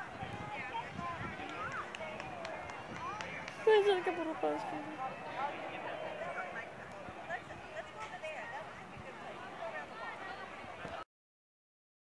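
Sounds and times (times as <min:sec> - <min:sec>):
distant faint voices: 0:00.0 - 0:11.0
low background chatter: 0:00.0 - 0:11.0.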